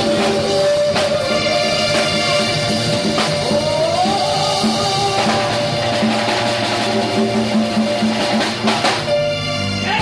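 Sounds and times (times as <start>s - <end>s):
drums: 0.0s - 10.0s
hand-drum percussion: 0.0s - 10.0s.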